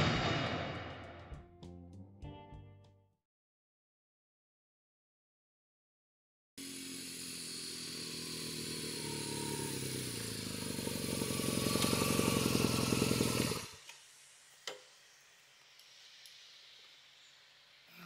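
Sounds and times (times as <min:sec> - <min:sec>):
motorcycle engine at low revs: 0:06.6 - 0:13.9.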